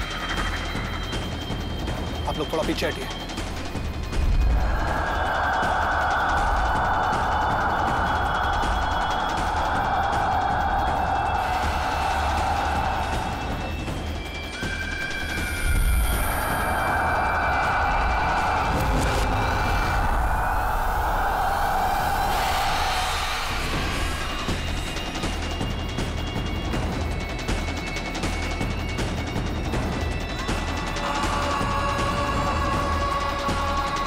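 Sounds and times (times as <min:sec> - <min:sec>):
sustained droning tones: 0:00.0 - 0:34.0
low rumble: 0:03.2 - 0:27.9.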